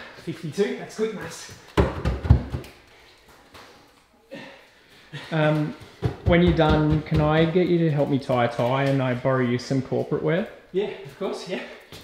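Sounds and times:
bare feet thudding on timber stairs: 1.5 - 2.8, 5.6 - 7.7.

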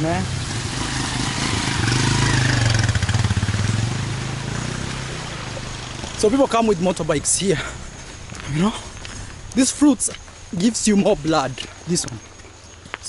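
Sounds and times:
motorcycle engine running: 0.0 - 7.0.

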